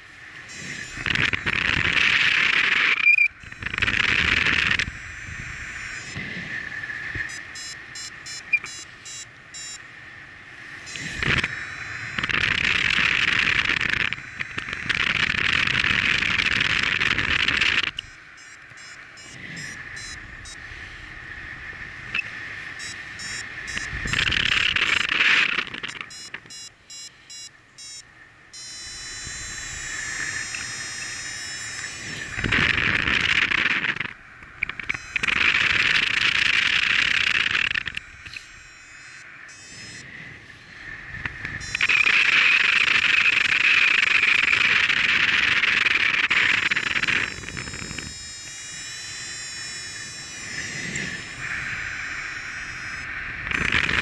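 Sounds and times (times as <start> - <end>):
wind rushing over microphone: 0.0 - 8.6, 9.9 - 26.4, 29.1 - 38.7, 39.3 - 48.3, 49.9 - 54.0
variometer high beeps: 0.4 - 6.2, 7.1 - 9.9, 10.8 - 20.6, 22.1 - 25.2, 25.8 - 34.0, 34.6 - 40.2, 41.4 - 53.8.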